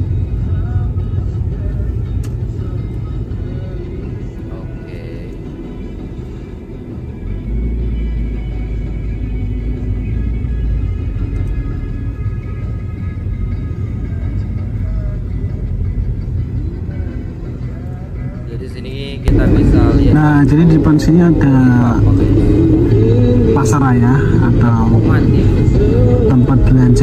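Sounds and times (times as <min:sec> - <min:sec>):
background music: 0:00.0 - 0:27.0
road rumble inside car: 0:00.0 - 0:27.0.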